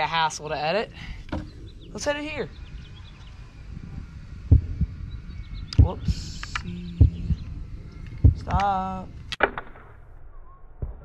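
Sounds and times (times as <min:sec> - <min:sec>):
bowstring snapping: 0:05.7 - 0:06.8
arrow thumping into target: 0:09.4 - 0:10.0.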